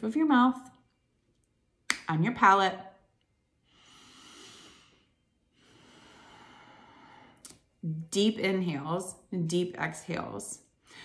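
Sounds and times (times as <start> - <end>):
deep breath through the nose: 3.7 - 7.4.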